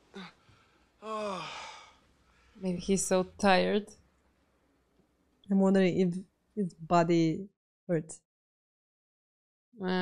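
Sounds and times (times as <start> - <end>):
person sighing: 0.1 - 0.4, 1.0 - 2.0
person grunting: 1.0 - 1.9.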